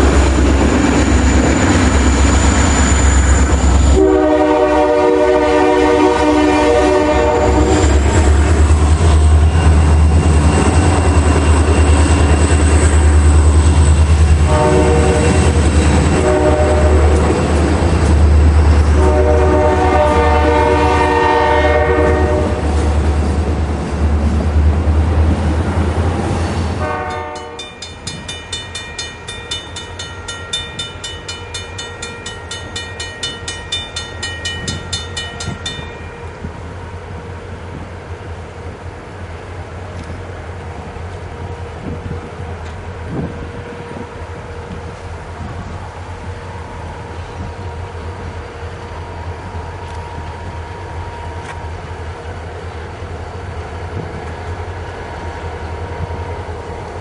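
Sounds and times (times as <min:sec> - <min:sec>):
freight cars rumbling past: 0:00.0 - 0:38.7
diesel locomotive engine drone: 0:00.0 - 0:57.0
fast repeating high ringing: 0:27.4 - 0:36.4.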